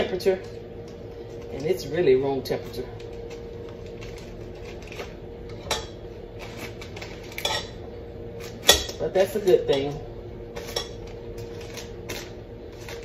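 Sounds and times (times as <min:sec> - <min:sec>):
steady low hum: 0:00.0 - 0:13.0
paper wrapper rustling: 0:02.9 - 0:05.2, 0:06.3 - 0:07.4, 0:11.0 - 0:13.0.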